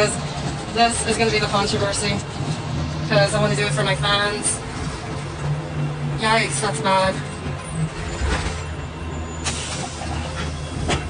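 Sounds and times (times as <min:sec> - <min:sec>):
bus engine and road rumble: 0:00.0 - 0:11.0
air brake hiss: 0:09.4 - 0:10.2.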